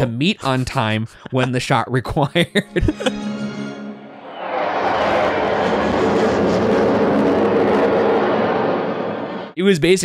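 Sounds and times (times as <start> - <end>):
jet aircraft passing overhead: 4.1 - 9.6.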